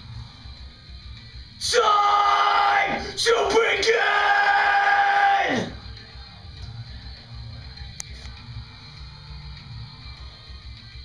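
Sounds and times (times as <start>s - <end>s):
man yelling into a microphone: 1.6s - 5.8s.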